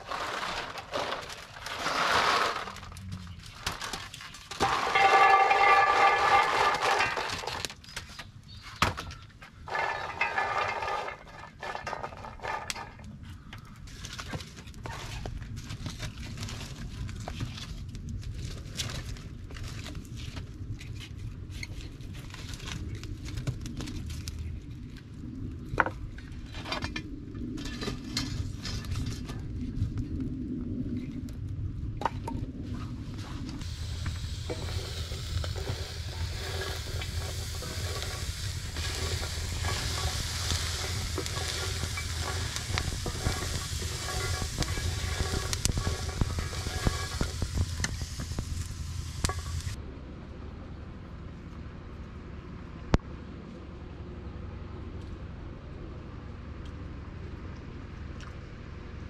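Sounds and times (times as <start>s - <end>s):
fire crackles: 0.0s - 8.6s, 9.2s - 49.8s
acorns rattling when stirred: 3.7s - 7.8s, 9.7s - 13.0s, 33.7s - 49.8s
acorns sizzling in a pan: 4.6s - 7.7s, 9.7s - 12.3s, 33.6s - 49.8s.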